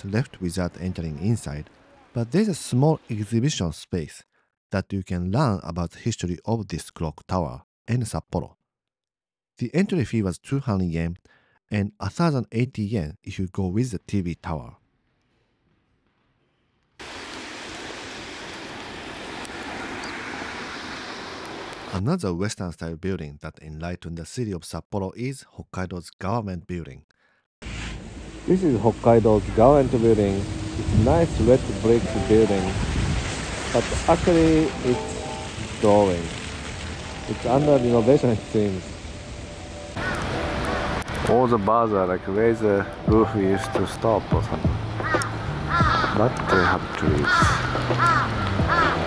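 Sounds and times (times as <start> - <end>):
tyres hissing through slush: 17.0 - 22.0, 27.6 - 38.9
cars and bus passing: 18.1 - 21.9, 27.7 - 37.4, 38.8 - 41.5, 44.7 - 45.8
crow cawing: 40.0 - 40.4, 45.0 - 49.0.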